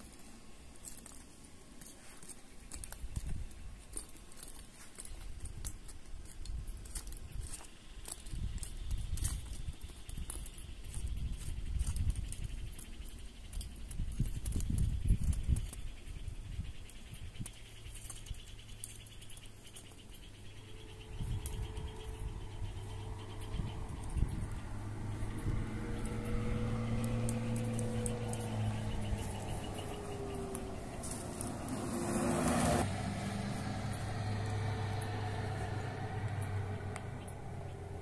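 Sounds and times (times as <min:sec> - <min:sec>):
vehicle engine passing by: 0:20.3 - 0:38.0.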